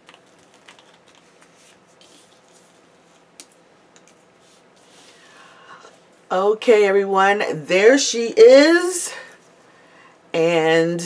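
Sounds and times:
paper rustling: 0.0s - 3.3s.

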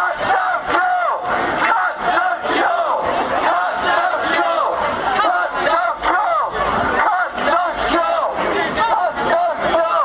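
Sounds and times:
crowd of protesters shouting: 0.0s - 10.0s.

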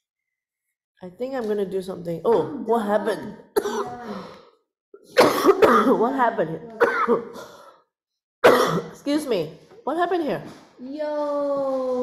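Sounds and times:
person speaking: 2.2s - 4.4s
person coughing: 3.0s - 4.3s, 5.0s - 6.1s, 6.8s - 7.6s, 8.4s - 9.0s.

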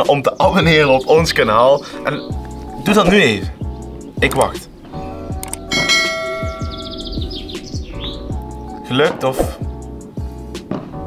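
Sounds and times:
background music with steady beat: 0.0s - 11.0s
click: 5.4s - 5.6s
falling chime notes: 5.6s - 8.0s
bright bell-like ding: 5.7s - 6.9s.

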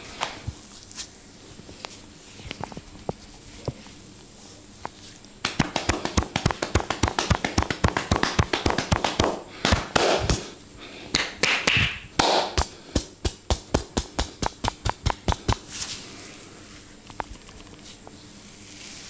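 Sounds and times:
hands tapping a head: 5.4s - 10.5s, 11.1s - 15.7s.

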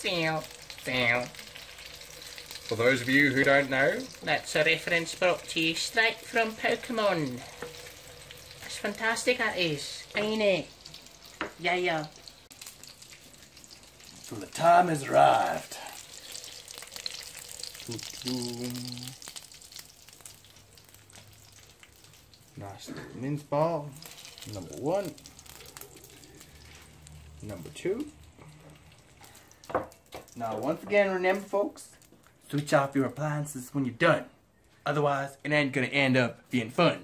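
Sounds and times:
meatballs sizzling in a pan: 0.0s - 33.8s.

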